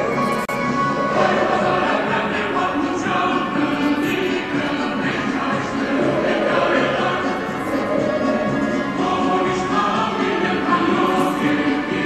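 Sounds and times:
choir singing: 0.8 - 12.0.

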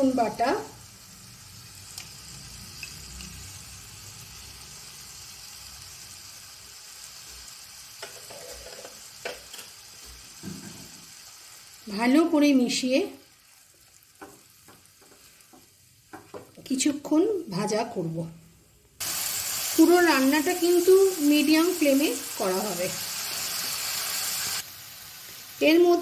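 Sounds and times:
paste sizzling in hot oil: 0.0 - 16.8, 19.0 - 26.0.

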